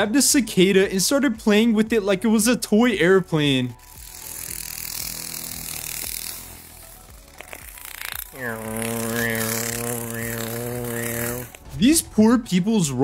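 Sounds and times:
high hissing buzz: 0:03.6 - 0:11.7
man imitating airplane engine: 0:08.2 - 0:11.6.

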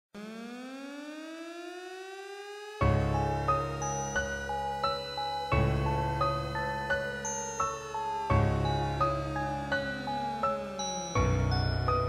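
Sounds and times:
rising synthesized tone: 0:00.2 - 0:12.0.

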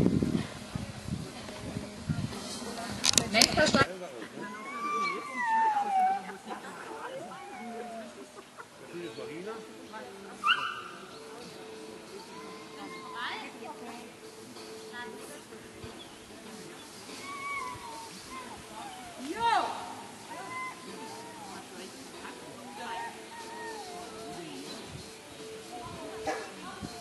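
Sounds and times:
people talking faintly: 0:00.0 - 0:27.0
dog whining: 0:04.6 - 0:06.4, 0:07.1 - 0:08.2, 0:17.2 - 0:19.2, 0:20.2 - 0:21.7, 0:22.6 - 0:24.8.

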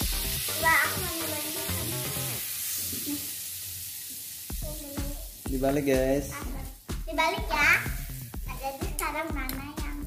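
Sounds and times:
burger patty sizzling in pan: 0:00.0 - 0:10.0.

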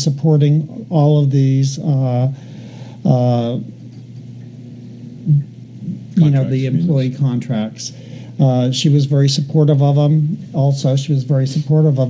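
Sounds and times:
microphone system hum: 0:00.0 - 0:12.0.

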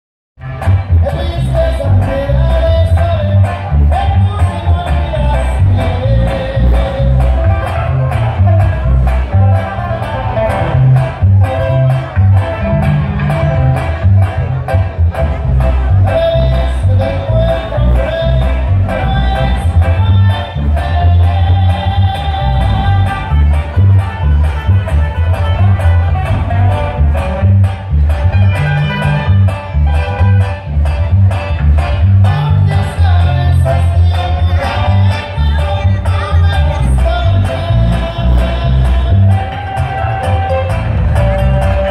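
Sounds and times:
deep bass line: 0:00.4 - 0:41.9
drums steady beat: 0:00.4 - 0:41.9
electric guitars: 0:00.4 - 0:41.9
live band playing dance tune: 0:00.4 - 0:41.9.

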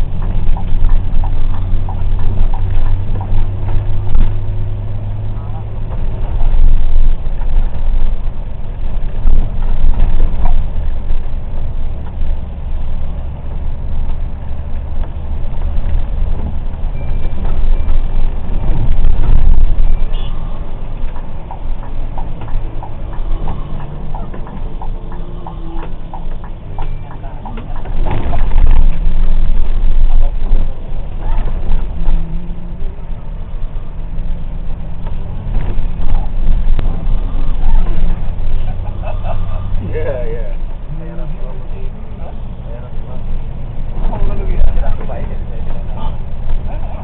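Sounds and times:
car engine and road noise: 0:00.0 - 0:47.0.

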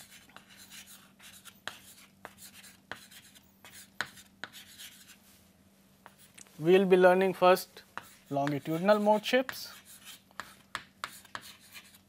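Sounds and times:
chalk scratching on chalkboard: 0:00.0 - 0:05.2, 0:06.0 - 0:06.3, 0:07.8 - 0:12.0.

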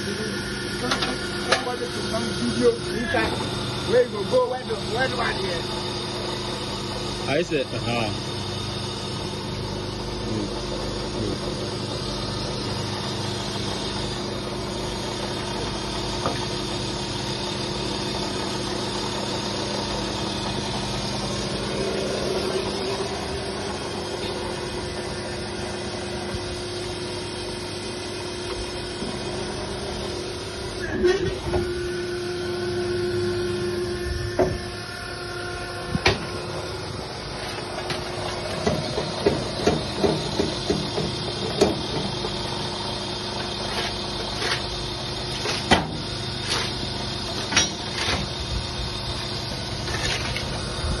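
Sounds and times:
hydraulic power unit humming: 0:00.0 - 0:51.0.

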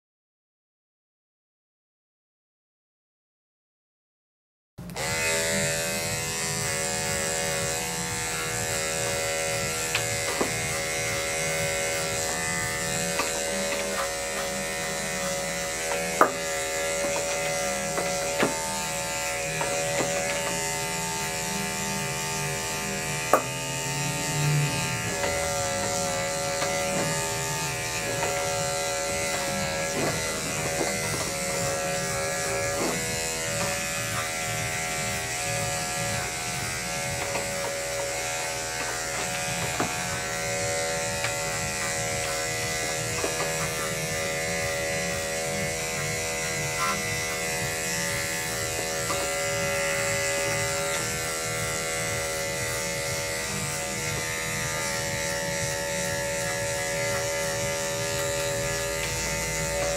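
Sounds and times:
electric dog clippers humming: 0:04.8 - 0:59.9.

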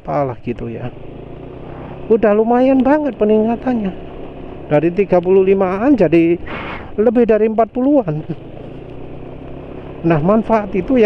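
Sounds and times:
scooter engine and tyre noise: 0:00.0 - 0:11.0.

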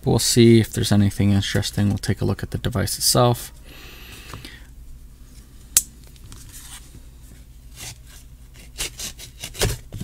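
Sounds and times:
knife blade scraping plastic: 0:07.8 - 0:10.0.

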